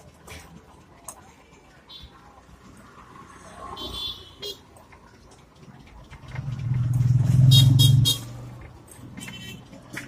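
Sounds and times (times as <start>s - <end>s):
vehicle engine passing by: 6.2s - 8.7s.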